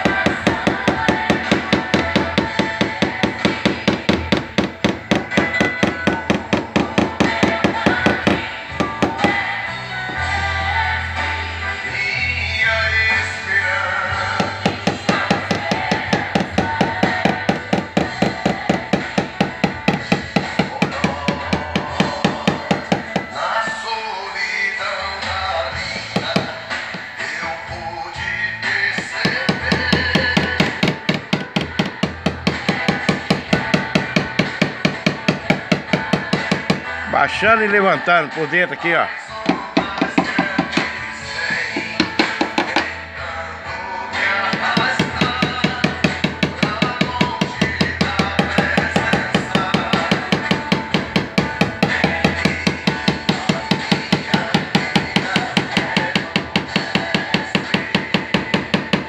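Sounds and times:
hammer tapping metal panel: 0:00.0 - 0:09.4
background music with singing: 0:00.0 - 0:59.0.

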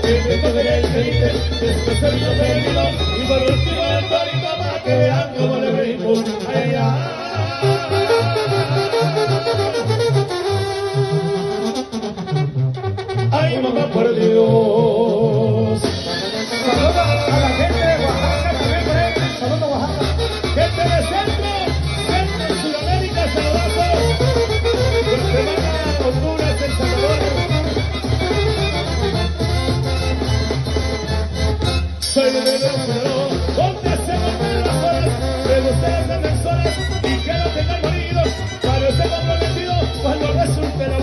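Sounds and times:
brass band playing: 0:00.0 - 0:41.0
tuba bass line: 0:00.0 - 0:41.0.

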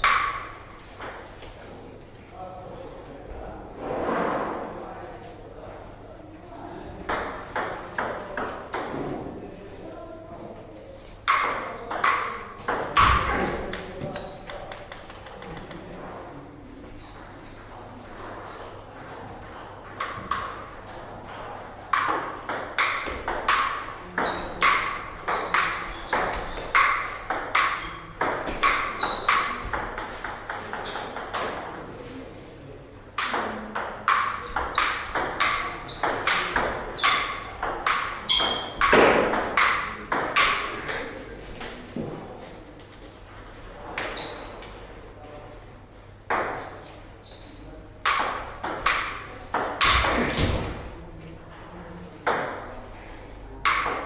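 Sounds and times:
table tennis ball ticking off bats: 0:21.9 - 0:31.7.

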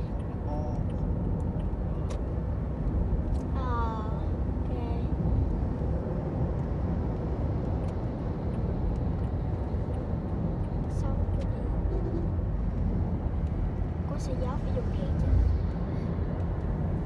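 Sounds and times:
car cabin road noise: 0:00.0 - 0:17.0.

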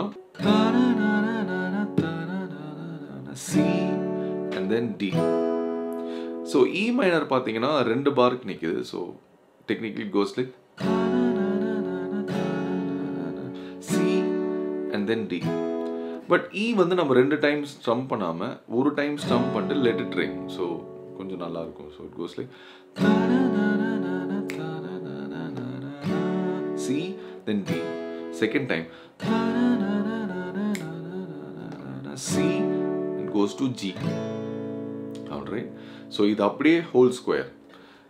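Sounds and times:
man humming a tune: 0:00.0 - 0:04.6, 0:10.8 - 0:14.5, 0:23.0 - 0:28.1, 0:28.9 - 0:32.9
acoustic guitar chord strummed: 0:00.0 - 0:07.6, 0:10.7 - 0:17.4, 0:19.1 - 0:38.0.

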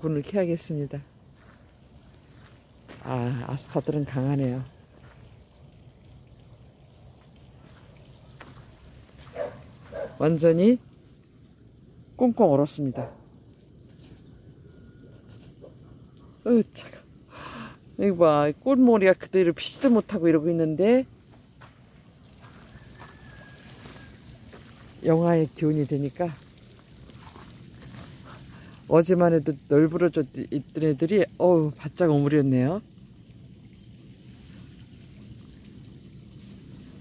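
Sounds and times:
faint outdoor background noise: 0:00.0 - 0:37.0.

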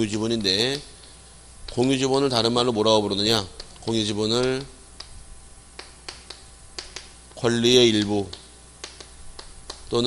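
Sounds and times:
chalk tapping on chalkboard: 0:05.8 - 0:10.0.

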